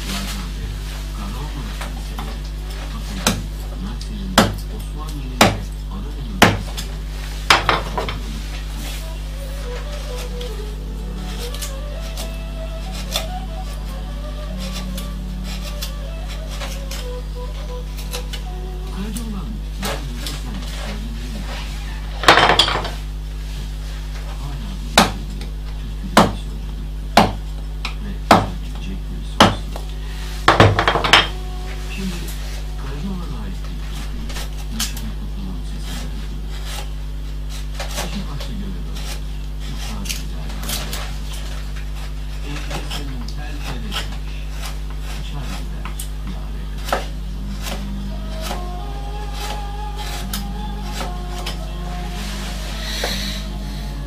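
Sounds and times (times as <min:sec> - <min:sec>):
hand paring wood: 0:01.8 - 0:03.5, 0:04.4 - 0:04.8, 0:05.4 - 0:05.7, 0:06.4 - 0:08.3, 0:09.6 - 0:23.0, 0:25.0 - 0:25.5, 0:26.1 - 0:26.4, 0:27.1 - 0:28.8, 0:29.4 - 0:31.6, 0:35.8 - 0:54.0.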